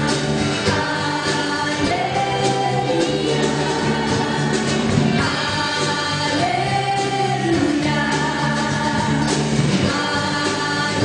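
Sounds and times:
drum kit: 0:00.0 - 0:11.0
electric guitar: 0:00.0 - 0:11.0
voices singing: 0:00.0 - 0:11.0.

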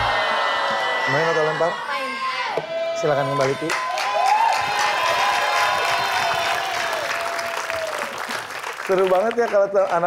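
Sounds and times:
audience applauding: 0:03.4 - 0:10.0.

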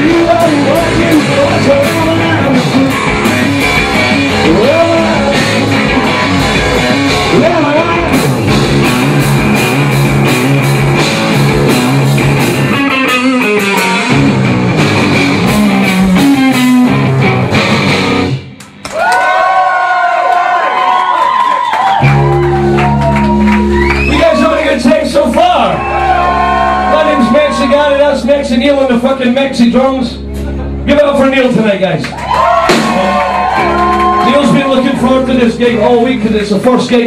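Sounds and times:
distorted electric guitar: 0:00.0 - 0:18.8, 0:22.0 - 0:37.0
drum kit pounding: 0:00.0 - 0:19.1, 0:21.8 - 0:37.0.

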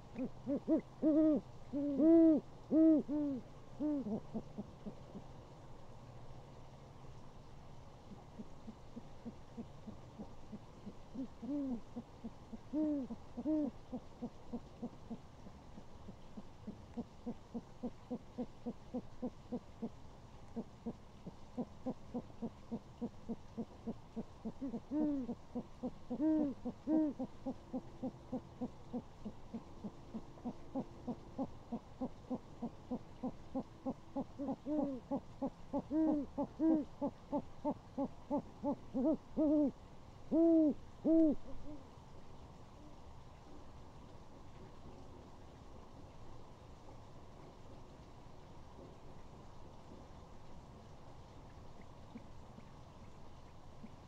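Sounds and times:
owls hooting: 0:00.0 - 0:05.2, 0:08.4 - 0:20.0, 0:20.6 - 0:41.8.

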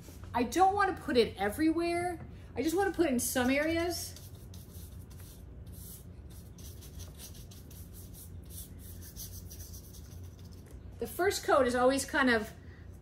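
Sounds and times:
low steady hum: 0:00.0 - 0:13.0
scratchy paintbrush strokes: 0:03.4 - 0:10.8.

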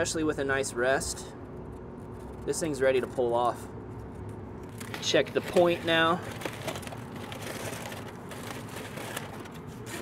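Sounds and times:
aluminium foil crinkling: 0:04.6 - 0:10.0.

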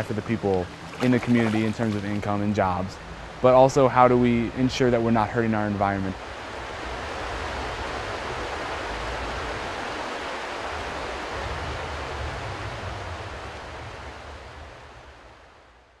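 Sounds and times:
water rushing: 0:00.0 - 0:15.7.

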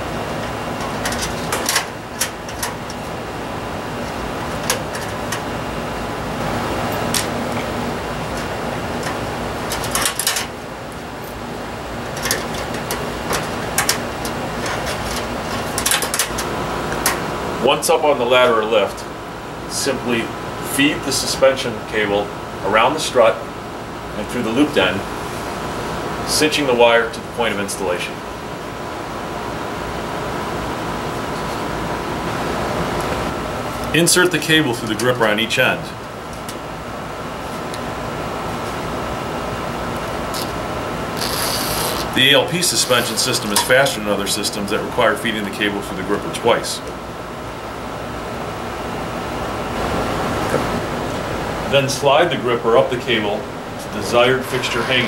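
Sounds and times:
steady background hum: 0:00.0 - 0:55.0
cable scraping through gripper: 0:41.2 - 0:42.2
steel cable scraping sheet metal: 0:53.8 - 0:55.0.

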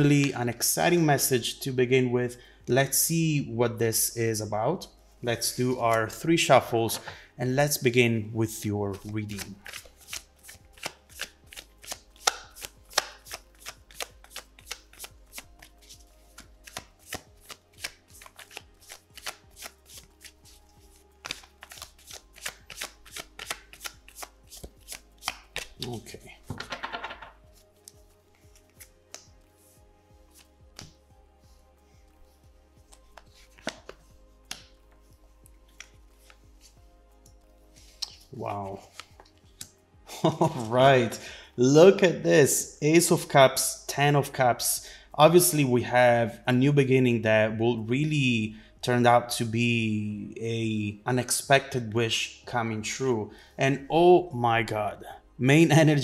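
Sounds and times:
faint background music: 0:00.0 - 0:56.0
cards being shuffled: 0:08.9 - 0:29.4, 0:30.3 - 0:31.0, 0:32.8 - 0:35.1, 0:35.7 - 0:36.8, 0:37.8 - 0:41.0
cards snapping on wooden table: 0:10.8 - 0:15.1, 0:21.2 - 0:25.9, 0:26.5 - 0:27.4, 0:30.8 - 0:31.0, 0:32.9 - 0:34.7, 0:35.7 - 0:36.0.

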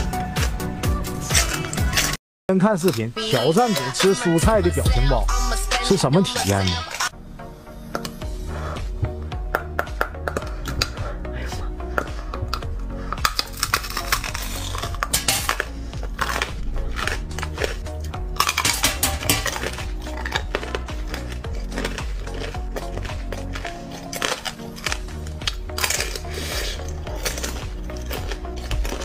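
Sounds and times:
background music: 0:00.0 - 0:29.0
crusty food crunching: 0:12.5 - 0:29.0.

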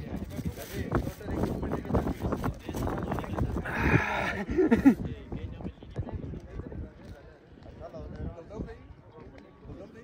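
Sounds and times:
quiet murmured prayer voices: 0:00.0 - 0:10.0.

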